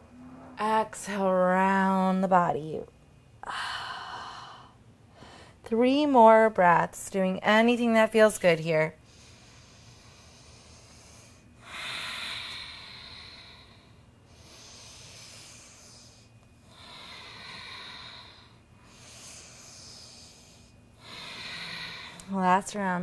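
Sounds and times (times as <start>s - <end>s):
woman breathing deeply: 3.4s - 5.6s, 9.0s - 22.4s.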